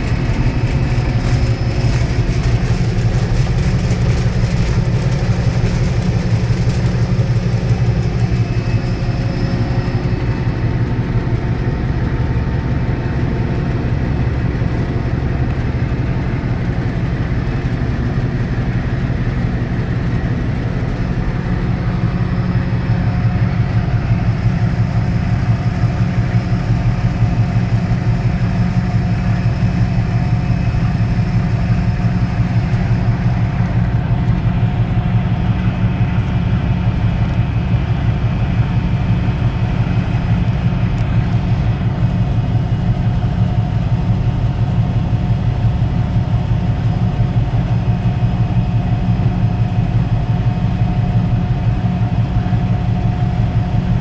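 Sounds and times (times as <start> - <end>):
diesel locomotive engine drone: 0.0 - 54.0.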